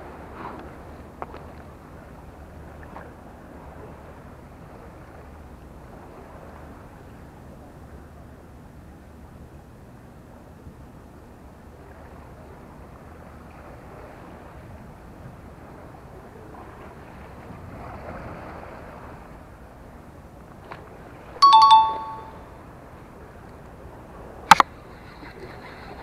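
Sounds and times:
sea noise: 0.0 - 26.0
wind: 0.0 - 26.0
two-note electronic chime: 21.4 - 22.6.

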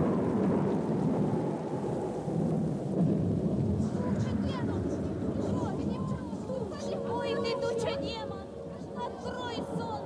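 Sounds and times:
thunder: 0.0 - 6.9
rain: 0.0 - 10.0.

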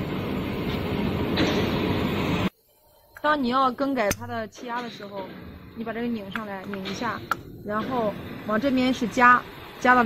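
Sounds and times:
plasma cutting machine running: 3.9 - 10.0.

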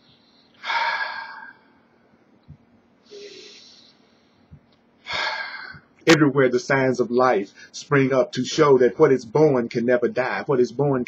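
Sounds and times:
man breathing deeply: 0.0 - 2.0, 3.0 - 6.0.

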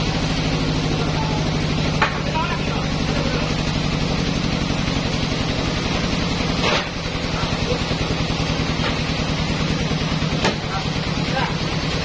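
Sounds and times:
sawmill engine running: 0.0 - 12.0.

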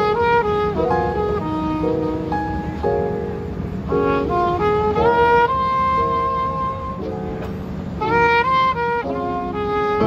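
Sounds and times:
trumpet holding long notes: 0.0 - 2.7, 3.9 - 10.0
piano: 0.0 - 10.0.

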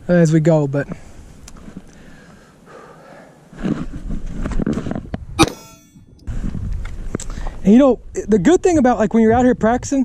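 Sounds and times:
man breathing close to microphone: 1.0 - 4.0.

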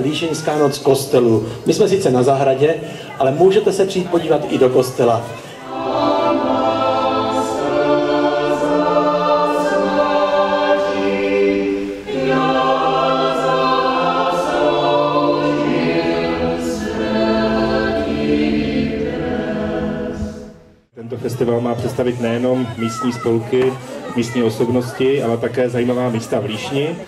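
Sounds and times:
choir singing long-held chords: 5.5 - 20.9.

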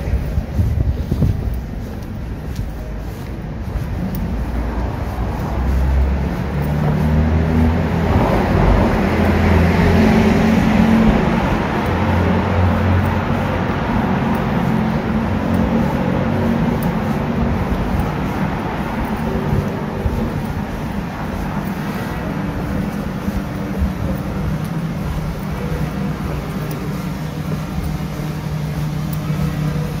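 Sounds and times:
vehicle engine running: 0.0 - 30.0.

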